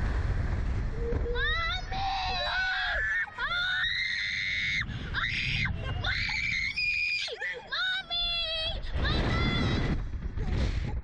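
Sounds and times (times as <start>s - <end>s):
children screaming: 1.3s - 7.7s.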